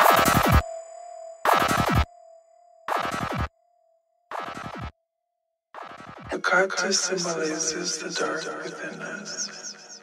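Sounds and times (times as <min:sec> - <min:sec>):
dark electronic music: 0:00.0 - 0:05.0, 0:05.8 - 0:07.4.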